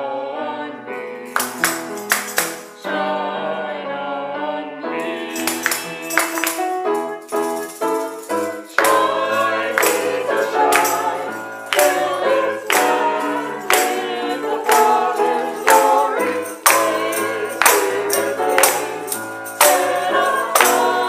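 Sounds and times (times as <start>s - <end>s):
choir singing: 0.0s - 1.3s, 2.6s - 21.0s
instrumental accompaniment: 0.9s - 3.6s, 4.8s - 21.0s
sharp percussive beat: 1.4s - 2.7s.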